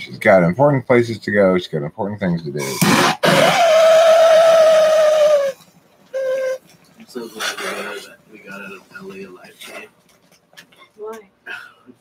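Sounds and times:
bong whistling hiss: 0:02.7 - 0:06.6.

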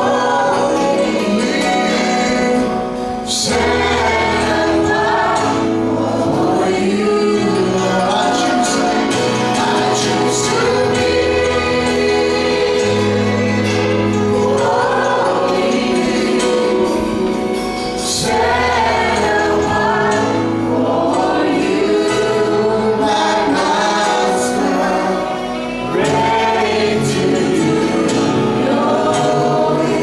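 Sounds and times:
keyboard: 0:00.0 - 0:30.0
voices singing together: 0:00.0 - 0:30.0.

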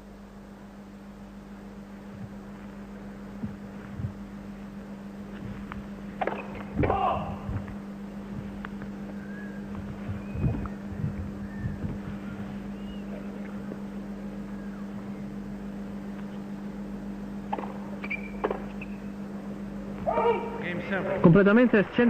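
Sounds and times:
steady low hum: 0:00.0 - 0:22.0
faint crowd murmur: 0:10.6 - 0:15.4.

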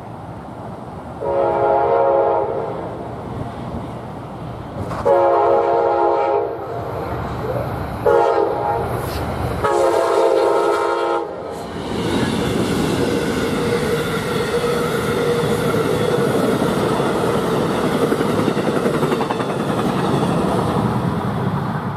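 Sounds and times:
train wheels rushing on rail: 0:00.0 - 0:21.9
locomotive horn blasts: 0:01.2 - 0:02.7, 0:05.0 - 0:06.7, 0:08.0 - 0:11.4.

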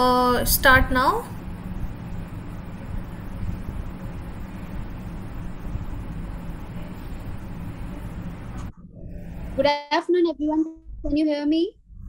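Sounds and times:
woman speaking: 0:00.0 - 0:01.4
microphone hiss with low hum: 0:00.0 - 0:12.0.

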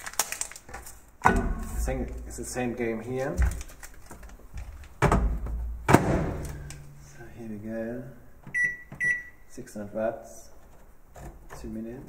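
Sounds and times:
microwave door thump: 0:05.0 - 0:06.7.

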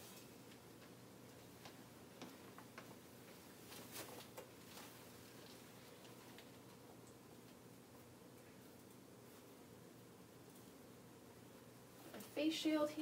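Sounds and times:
soft clicks and rustles of gown: 0:00.0 - 0:07.7.

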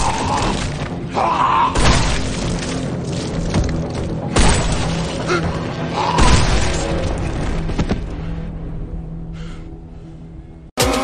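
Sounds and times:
dramatic music score: 0:00.0 - 0:11.0.

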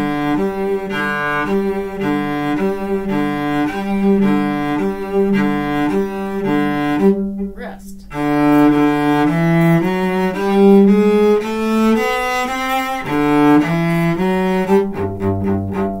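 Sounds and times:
bowed cello march melody: 0:00.0 - 0:16.0.

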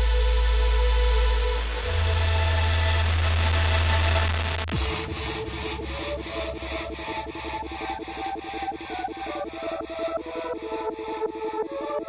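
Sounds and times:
deep synth bass note: 0:00.0 - 0:10.1
pulsing chopped synths: 0:00.0 - 0:12.0.

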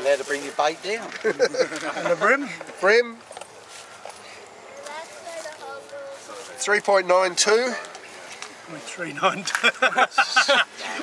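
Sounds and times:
faint distant voices: 0:00.0 - 0:11.0.

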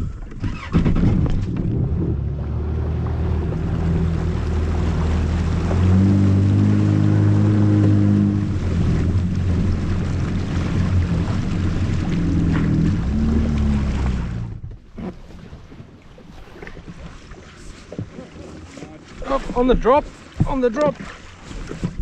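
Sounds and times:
jet ski engine running: 0:00.0 - 0:22.0
water rushing past hull: 0:00.0 - 0:22.0.

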